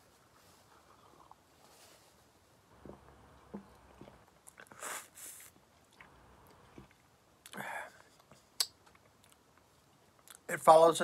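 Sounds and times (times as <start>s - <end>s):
sipping and swallowing: 0.9s - 1.4s, 2.8s - 5.1s
soft mouth clicks: 8.2s - 9.4s.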